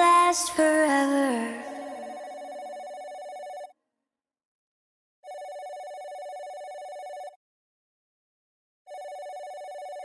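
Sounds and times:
telephone bell ringing: 0:01.8 - 0:03.7, 0:05.2 - 0:07.4, 0:08.9 - 0:10.0.

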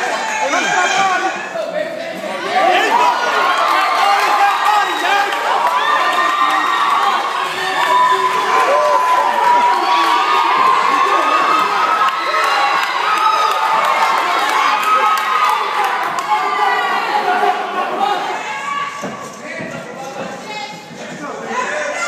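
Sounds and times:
crowd cheering and yelling: 0:00.0 - 0:22.0.

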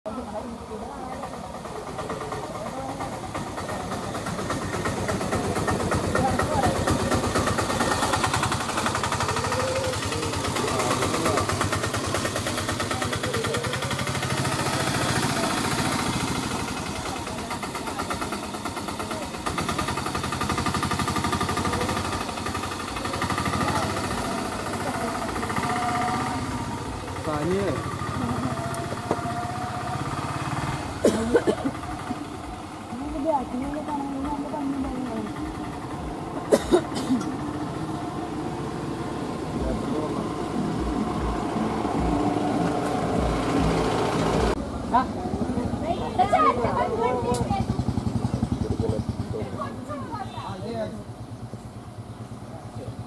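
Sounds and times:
people talking in background: 0:00.1 - 0:53.0
vehicle engine idling: 0:00.1 - 0:53.0.

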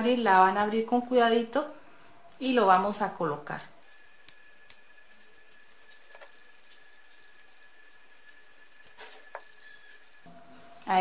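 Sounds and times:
soft fabric rubbing: 0:04.8 - 0:11.0.

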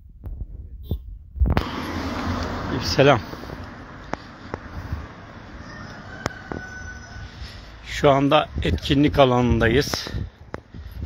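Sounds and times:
town street background noise: 0:01.4 - 0:11.0.

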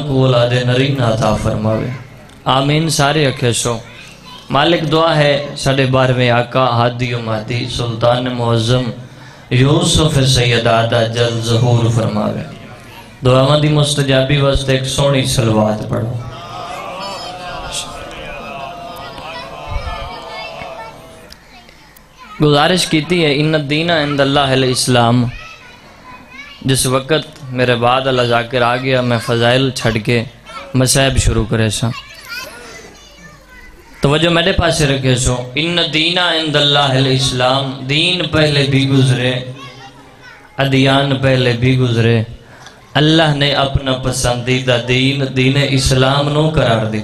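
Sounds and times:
children chattering: 0:01.0 - 0:05.9, 0:11.2 - 0:14.0, 0:16.1 - 0:34.7, 0:39.1 - 0:41.2.

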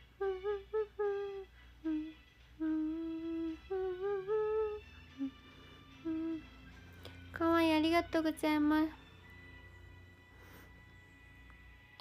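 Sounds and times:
woman humming: 0:00.0 - 0:06.6.

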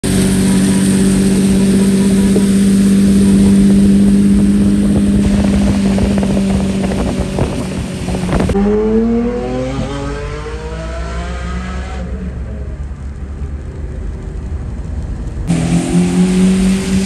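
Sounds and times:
car engine cruising: 0:00.0 - 0:17.0
tyres hissing on wet road: 0:15.4 - 0:17.0.

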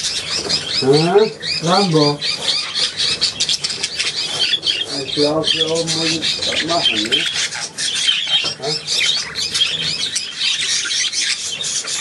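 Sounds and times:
budgerigars chattering: 0:00.0 - 0:12.0.

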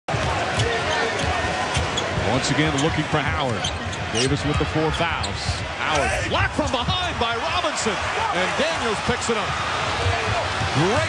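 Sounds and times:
arena crowd murmur: 0:00.1 - 0:11.0.

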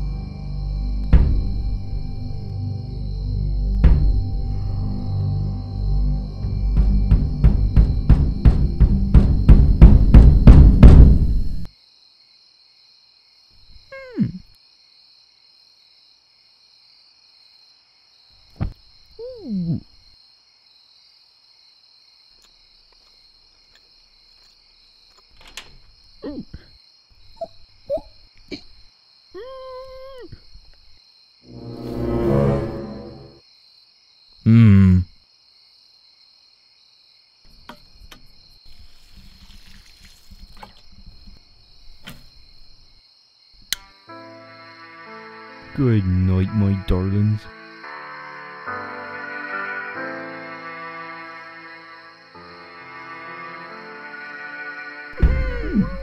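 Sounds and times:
crickets chirring: 0:00.0 - 0:49.2, 0:50.1 - 0:56.0.

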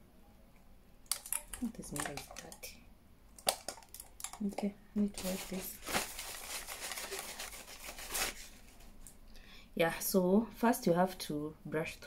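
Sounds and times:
light clicks and taps: 0:01.1 - 0:02.8.

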